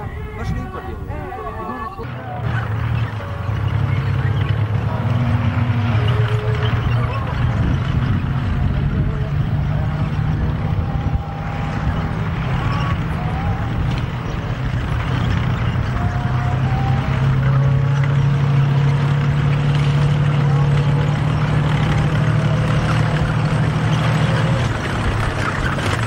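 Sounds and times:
tank engine droning: 0:00.0 - 0:26.0.

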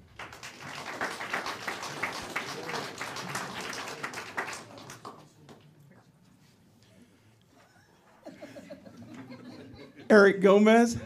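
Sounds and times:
audience clapping: 0:00.0 - 0:06.1.

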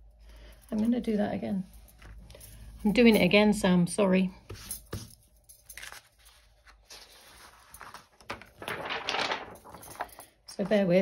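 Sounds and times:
paper rustling: 0:04.5 - 0:11.0.

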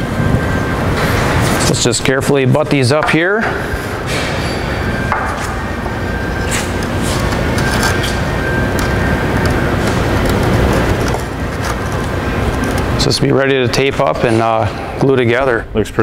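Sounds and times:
shop machinery running: 0:00.0 - 0:15.6.

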